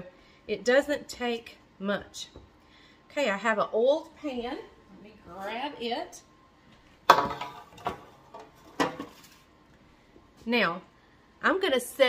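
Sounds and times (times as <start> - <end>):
metal baking sheet knocking on stone: 7.1 - 8.0.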